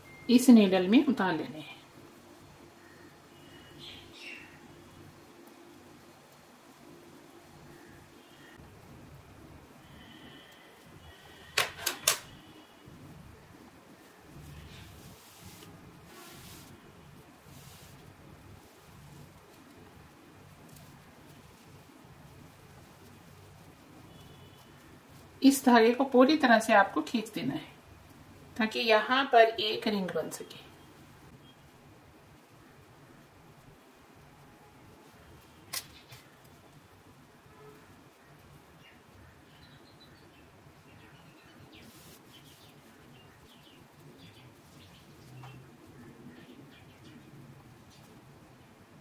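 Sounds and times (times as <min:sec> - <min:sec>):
faint low background: 0:00.0 - 0:49.0
hands handling knitted wool: 0:14.5 - 0:16.8, 0:17.4 - 0:19.9.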